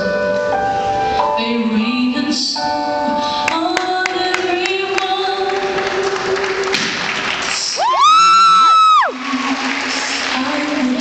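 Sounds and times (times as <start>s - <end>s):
crowd: 3.8s - 11.0s
spectator whooping: 7.8s - 9.9s.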